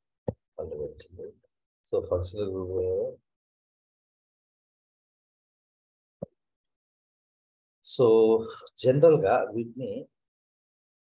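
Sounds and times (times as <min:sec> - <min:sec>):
man speaking: 0:01.9 - 0:03.2, 0:07.9 - 0:10.1.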